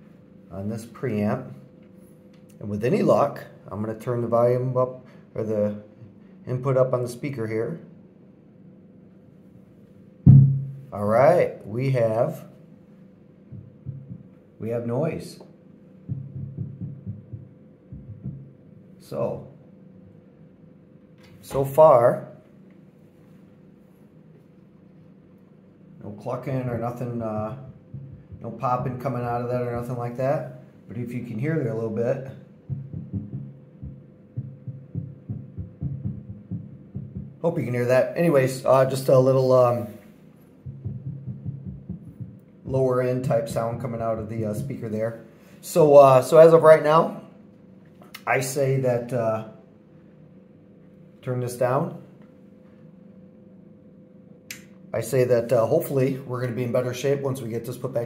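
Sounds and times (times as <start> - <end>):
speaker hum: 0.0 - 58.0
low thump through speaker: 10.3 - 10.8, 13.5 - 14.3, 16.1 - 18.5, 26.7 - 29.9, 32.7 - 37.4, 40.6 - 42.4.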